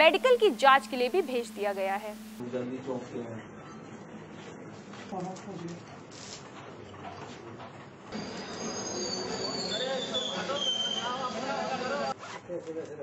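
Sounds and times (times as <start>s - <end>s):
high whistling gliding downward: 8.2s - 12.1s.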